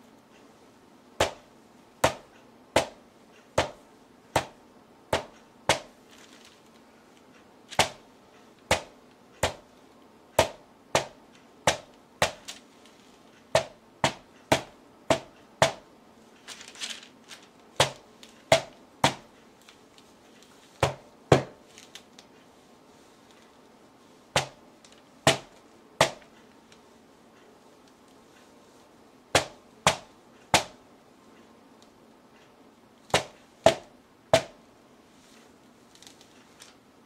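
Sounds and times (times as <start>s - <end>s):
rubber mallet smacking canvas: 1.2s - 3.0s, 3.6s - 6.0s, 7.8s - 8.1s, 8.7s - 9.7s, 10.4s - 12.6s, 13.5s - 15.9s, 17.8s - 19.3s, 20.8s - 21.6s, 24.4s - 24.6s, 25.2s - 26.3s, 29.4s - 30.8s, 33.1s - 34.6s.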